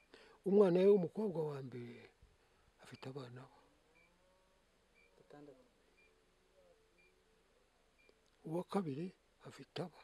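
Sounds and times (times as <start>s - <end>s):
faint high chirps: 2.8s - 7.3s.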